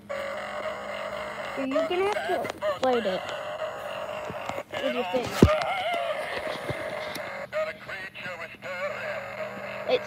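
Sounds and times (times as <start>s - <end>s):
toy playing warbling song: 0.0s - 10.0s.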